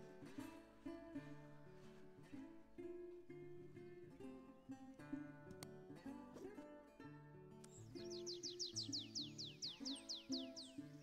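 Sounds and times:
plucked acoustic guitar music: 0.0 - 11.0
songbird whistling: 7.7 - 11.0.

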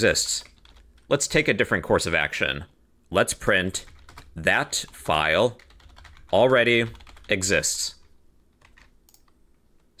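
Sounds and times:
computer keyboard keystrokes: 0.4 - 0.8, 3.9 - 4.3, 5.6 - 7.4, 8.6 - 9.4.

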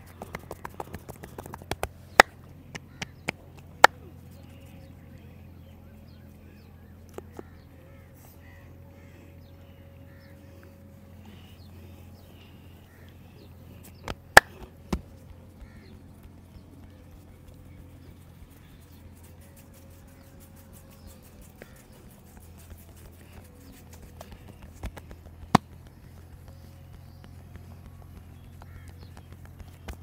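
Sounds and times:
low background hum: 0.0 - 30.0.

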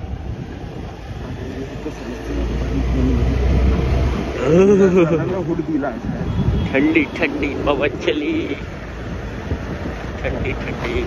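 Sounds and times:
road rumble: 0.0 - 11.0.

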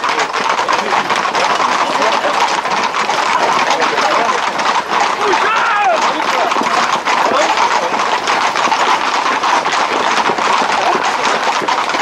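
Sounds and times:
horse hooves on asphalt: 0.0 - 12.0
people shouting: 1.4 - 8.5, 9.1 - 11.6.

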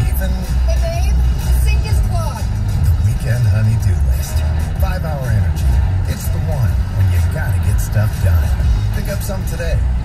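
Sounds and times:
car radio voice: 0.0 - 10.0
road and engine rumble: 0.0 - 10.0.

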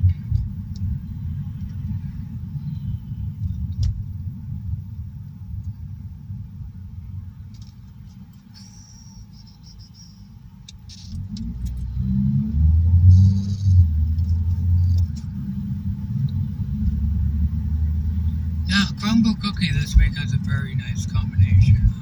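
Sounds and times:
car engine and road rumble: 0.0 - 22.0.

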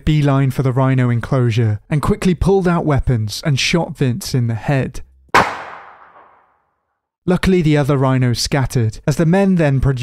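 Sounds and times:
gunshot with echo: 5.4 - 6.5.

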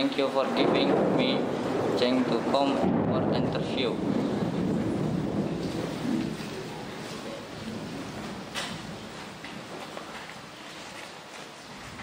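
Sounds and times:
loud background rumble: 0.0 - 9.4.

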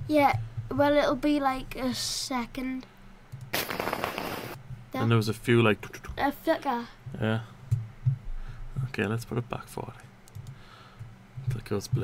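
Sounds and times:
crackling burst of noise: 3.5 - 4.6.

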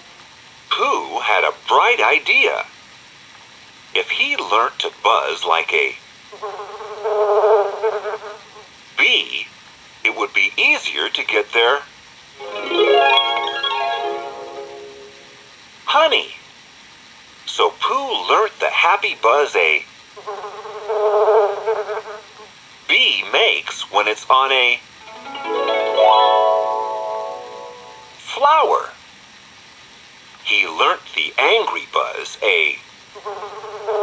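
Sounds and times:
bee buzzing: 6.4 - 8.7, 20.2 - 22.5.

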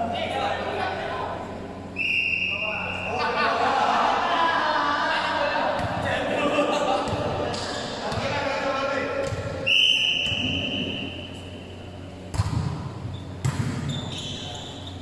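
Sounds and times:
referee's whistle blast: 2.0 - 3.1, 9.6 - 11.3
volleyball bouncing on floor: 5.8 - 6.1, 7.0 - 8.5, 9.2 - 10.9, 12.3 - 14.2.

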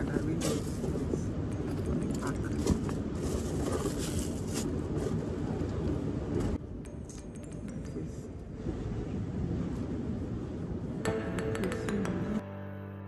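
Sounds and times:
steady low rumble: 0.0 - 12.5.

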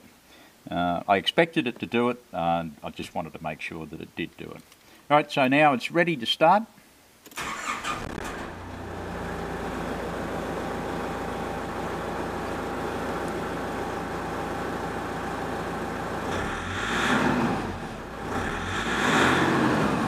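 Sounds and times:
diesel engine cranking: 7.4 - 9.6, 16.0 - 20.0
diesel engine idling: 8.5 - 16.9.

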